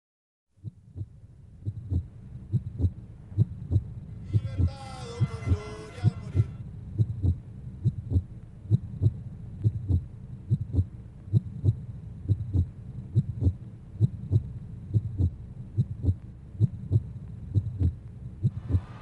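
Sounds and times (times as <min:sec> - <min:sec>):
heartbeat-style double thump: 0:00.6 - 0:03.9, 0:06.4 - 0:19.0.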